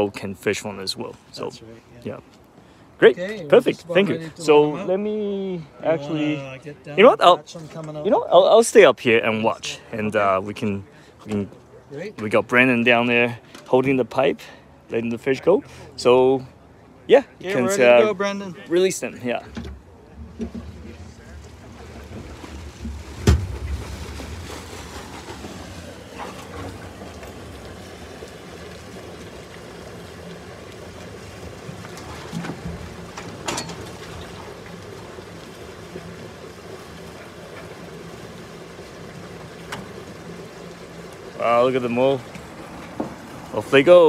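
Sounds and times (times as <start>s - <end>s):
water pouring into lake: 19.2s - 44.0s
water rushing down a pipe: 20.0s - 44.0s.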